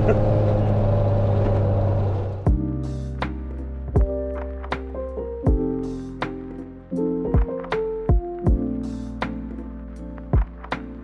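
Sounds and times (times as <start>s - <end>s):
car engine running: 0.0s - 2.6s
road noise: 0.0s - 4.6s.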